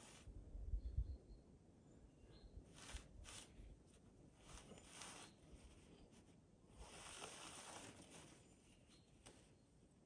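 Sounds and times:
faint bird chirp: 0.6s - 3.0s, 8.1s - 10.0s.

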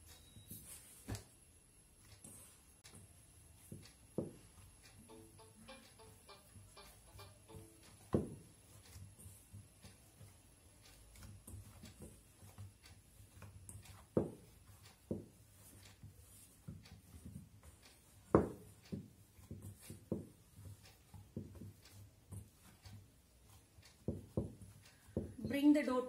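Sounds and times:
hands rubbing dough in bowl: 7.8s - 25.3s.

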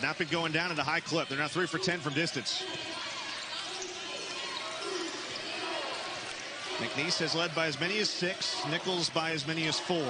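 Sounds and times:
crowd murmur: 0.0s - 10.0s.

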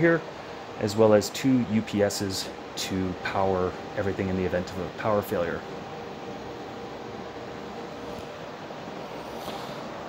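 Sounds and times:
computer equipment fan noise: 0.0s - 10.0s
faint steady hum: 0.0s - 10.0s
portable air conditioner: 0.0s - 10.0s.

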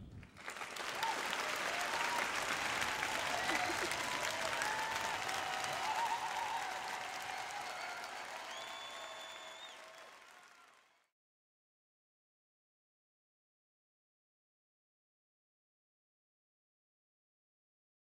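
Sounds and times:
audience applause: 0.1s - 11.1s.

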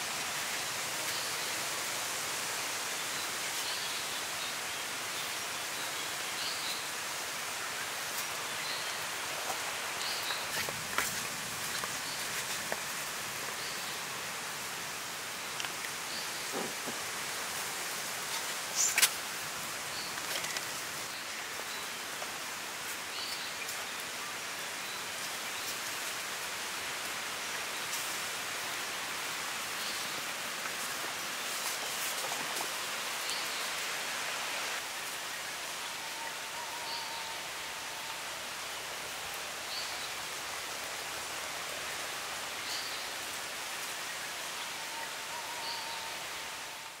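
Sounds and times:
steady forest hiss: 0.0s - 47.0s.

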